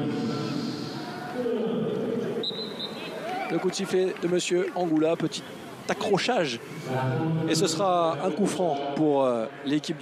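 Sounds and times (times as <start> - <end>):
referee's whistle blast: 2.4 - 3.2.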